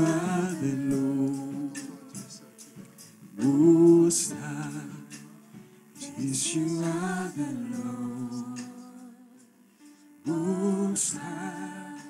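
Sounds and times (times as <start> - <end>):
voices singing worship song: 0.0 - 12.0.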